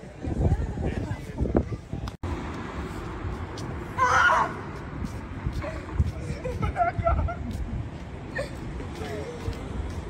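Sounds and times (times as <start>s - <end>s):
low traffic rumble: 0.0s - 10.0s.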